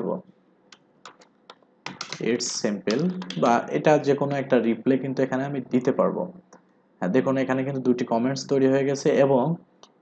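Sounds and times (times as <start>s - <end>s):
man talking: 0.0s - 0.3s, 2.2s - 6.4s, 7.0s - 9.6s
keyboard key clicks: 0.7s - 2.3s.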